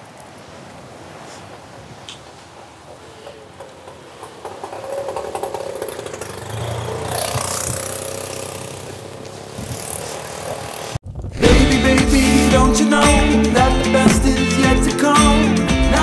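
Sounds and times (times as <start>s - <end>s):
street noise: 0.0s - 16.0s
auto-rickshaw engine passing: 2.9s - 11.0s
loud music: 11.4s - 16.0s.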